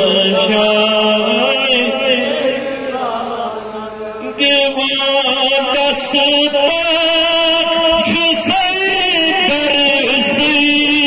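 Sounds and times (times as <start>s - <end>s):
man chanting into microphone: 0.0s - 11.0s.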